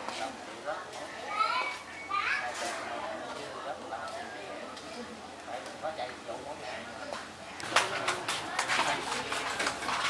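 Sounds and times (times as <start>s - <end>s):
children calling and chattering: 0.0s - 5.9s, 6.5s - 10.0s
murmur of voices: 0.0s - 10.0s.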